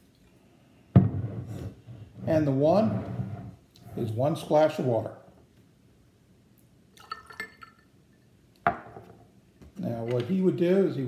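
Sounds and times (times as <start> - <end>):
glass bottle set down on table: 8.7 - 9.2.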